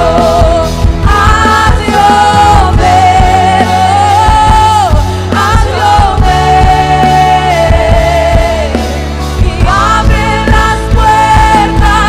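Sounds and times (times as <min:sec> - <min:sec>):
bass: 0:00.0 - 0:12.0
electric guitar: 0:00.0 - 0:12.0.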